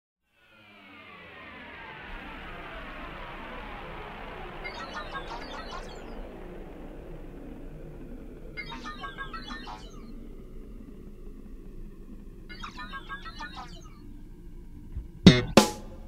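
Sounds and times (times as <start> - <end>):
faint low rumble: 0.4 - 16.0
high bird-like chirping: 4.5 - 7.2, 8.3 - 10.7, 12.4 - 14.1.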